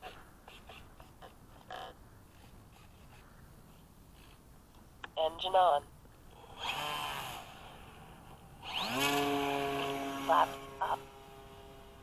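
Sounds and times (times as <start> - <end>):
electric motor and propeller whine: 6.3 - 12.0.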